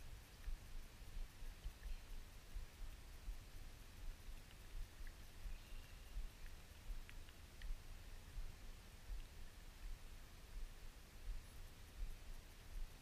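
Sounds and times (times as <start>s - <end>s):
faint high chirps: 0.0s - 13.0s.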